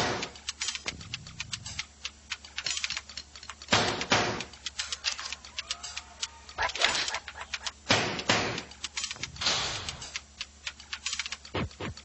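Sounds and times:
rapid irregular clicking: 0.0 - 12.0.

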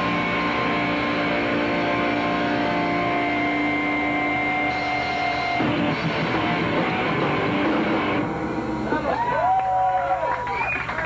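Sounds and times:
distorted electric guitar chord: 0.0 - 9.2.

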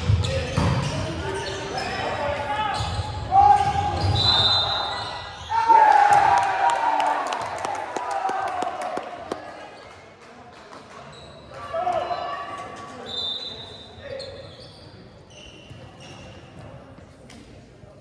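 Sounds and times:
players shouting and cheering: 1.9 - 9.6
referee's whistle: 4.0 - 5.6, 13.0 - 14.8.

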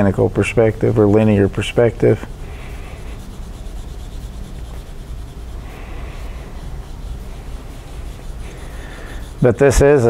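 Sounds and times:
pencil shading on paper: 1.4 - 10.0.

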